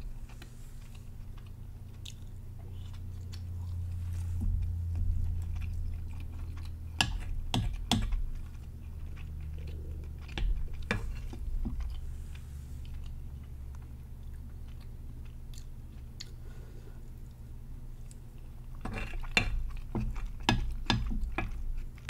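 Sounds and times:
close chewing: 0:00.0 - 0:16.5
low steady hum: 0:00.0 - 0:22.0.

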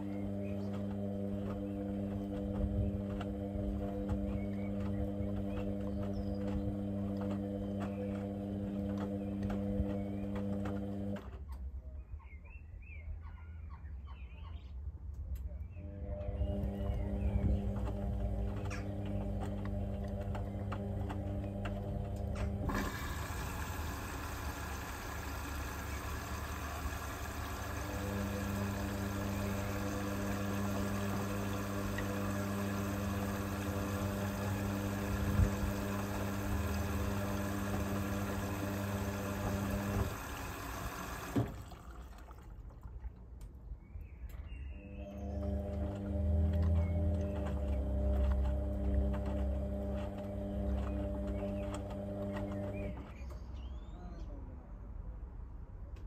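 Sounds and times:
washing machine drum turning: 0:00.0 - 0:11.2, 0:16.1 - 0:42.0, 0:45.2 - 0:53.3
water hissing into machine: 0:22.7 - 0:42.0.

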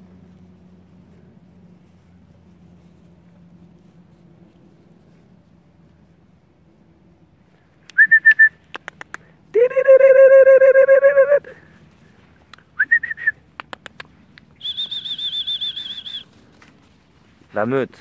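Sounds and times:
person whistling warbling calls: 0:07.9 - 0:08.6, 0:09.6 - 0:11.6, 0:12.8 - 0:13.4, 0:14.6 - 0:16.2
sharp clicks: 0:08.6 - 0:09.3, 0:13.5 - 0:14.5.

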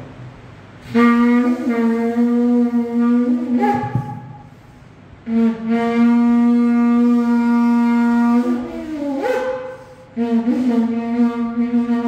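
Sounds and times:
shofar blasts: 0:00.8 - 0:04.6, 0:05.2 - 0:12.0.

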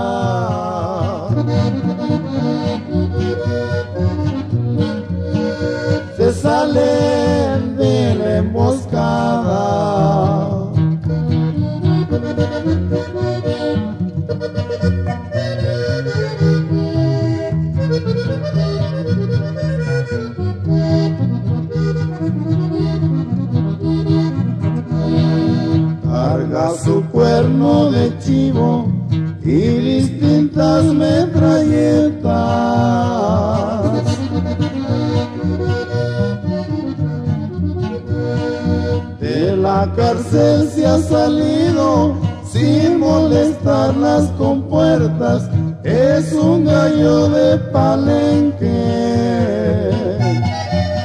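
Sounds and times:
accordion melody: 0:00.0 - 0:51.0
steady bass line: 0:00.0 - 0:51.0.

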